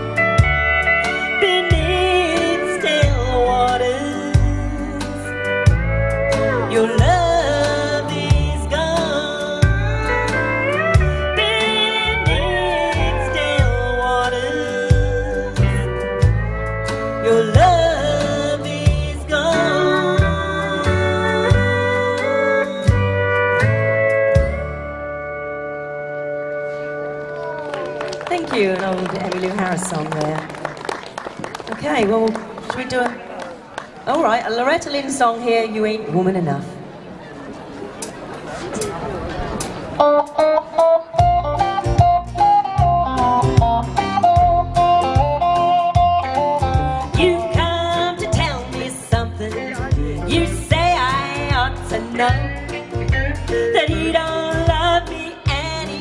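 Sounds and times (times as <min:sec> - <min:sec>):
bass notes: 0:00.0 - 0:27.7, 0:39.5 - 0:56.0
pedal steel guitar melody: 0:00.0 - 0:30.4, 0:40.0 - 0:56.0
electric guitar: 0:00.0 - 0:34.0, 0:38.8 - 0:56.0.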